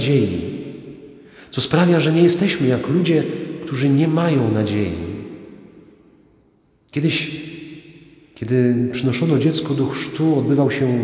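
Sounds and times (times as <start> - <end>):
man speaking: 0.0 - 0.5, 1.5 - 5.2, 6.9 - 7.4, 8.4 - 11.0
room reverberation: 0.0 - 11.0.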